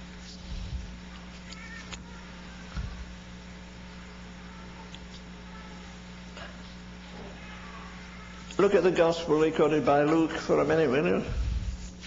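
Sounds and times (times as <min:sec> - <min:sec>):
low hum: 0:11.2 - 0:12.0
soft low thumps: 0:11.3 - 0:12.0.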